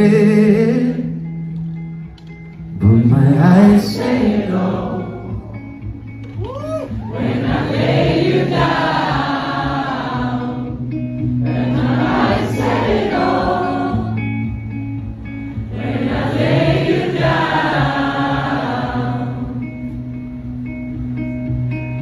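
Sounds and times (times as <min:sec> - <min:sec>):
electric guitar: 0:00.0 - 0:22.0.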